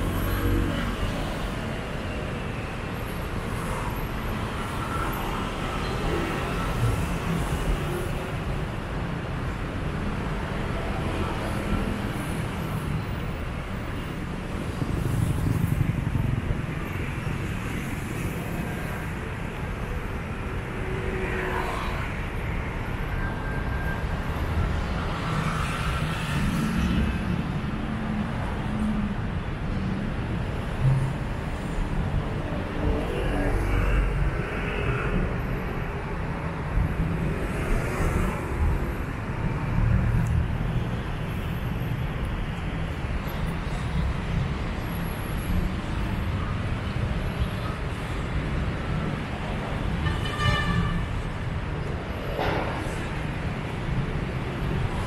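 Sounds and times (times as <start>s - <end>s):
city road traffic: 0.0s - 55.0s.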